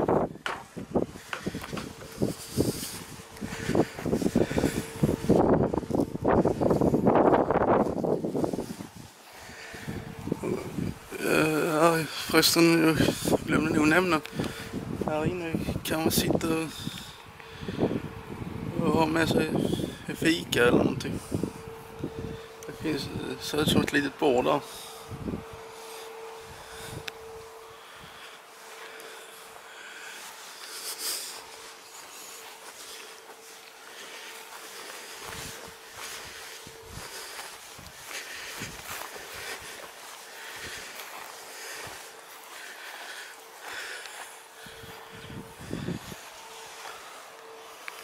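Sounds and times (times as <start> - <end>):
wind gusting on microphone: 0.0 - 11.4, 12.1 - 28.2, 35.2 - 41.2, 44.6 - 47.0
faint steady hum: 0.0 - 48.0
footsteps on grass: 0.0 - 48.0.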